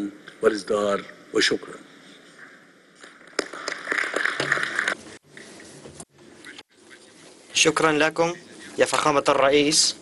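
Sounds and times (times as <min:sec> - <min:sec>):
audience applauding: 0:03.4 - 0:05.0.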